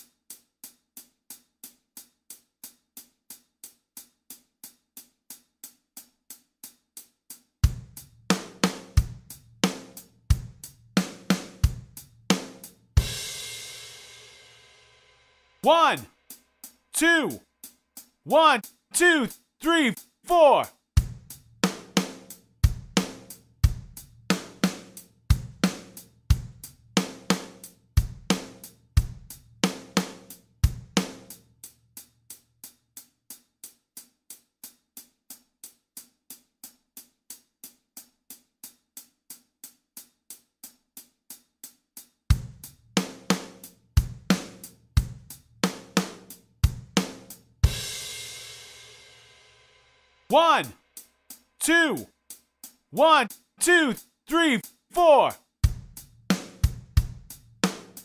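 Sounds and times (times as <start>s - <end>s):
hi-hat ticks: 0.0s - 8.1s, 51.0s - 51.5s, 52.1s - 54.9s
drum kit playing a beat: 0.6s - 14.2s, 18.0s - 31.4s, 42.3s - 48.7s, 50.3s - 50.7s, 51.3s - 52.0s, 53.0s - 58.0s
bass drum: 21.0s - 21.3s, 55.6s - 56.1s
snare drum: 53.0s - 58.0s.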